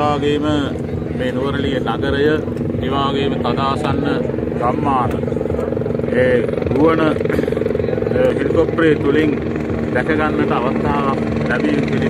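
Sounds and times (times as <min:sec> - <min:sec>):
helicopter engine drone: 0:00.0 - 0:12.0.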